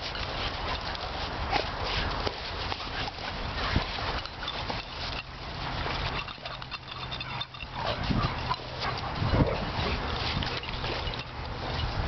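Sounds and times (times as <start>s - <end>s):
dog paws scuffling on gravel: 0.0s - 12.0s.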